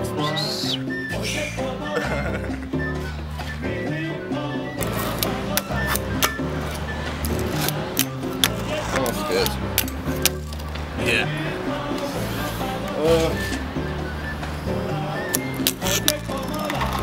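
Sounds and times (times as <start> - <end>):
music with steady bass line: 0.0 - 17.0
fingerboard clacking: 15.2 - 17.0.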